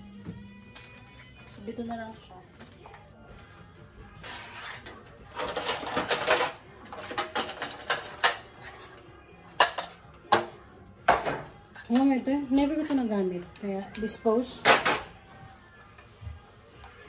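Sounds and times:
rummaging and clattering: 5.2 - 8.6.

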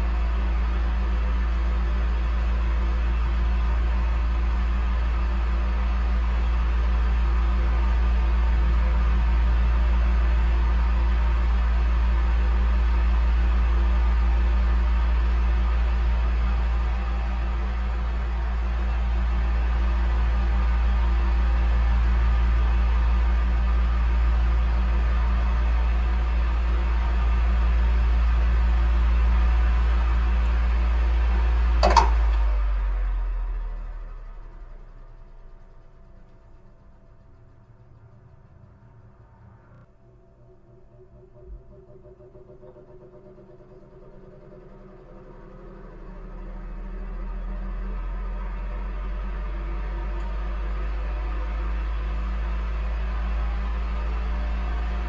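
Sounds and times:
electric fan running: 0.0 - 55.0.

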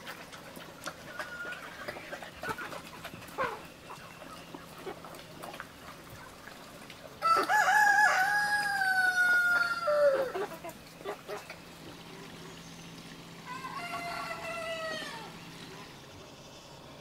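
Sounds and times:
rooster crowing: 7.2 - 10.4, 13.4 - 15.4.

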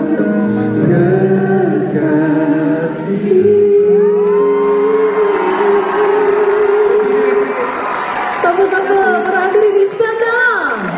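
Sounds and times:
live band playing: 0.0 - 10.9
audience noise: 2.5 - 10.9.

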